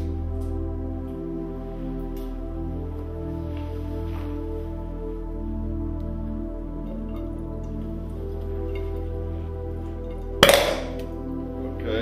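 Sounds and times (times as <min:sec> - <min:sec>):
background music: 0:00.0 - 0:12.0
sharp hydrogen pop: 0:10.4 - 0:11.2.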